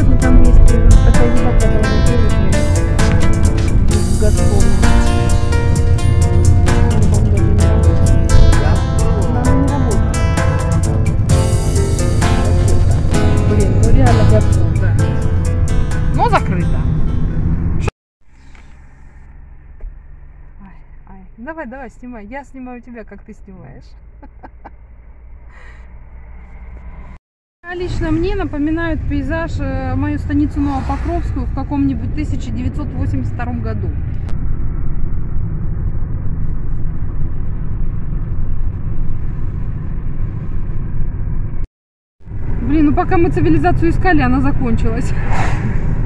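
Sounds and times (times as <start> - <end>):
car engine idling: 0.0 - 27.1.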